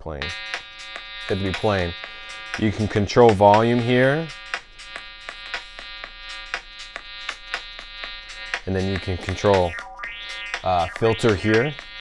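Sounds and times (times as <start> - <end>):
buzzy synth note: 0.1 - 12.0.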